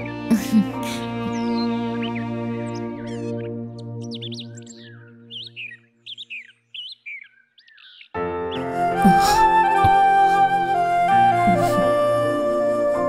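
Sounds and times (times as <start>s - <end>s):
flute background music: 0.0s - 6.3s, 8.2s - 13.0s
soft background music: 0.0s - 6.5s, 7.8s - 13.0s
small birds chirping: 0.0s - 10.0s.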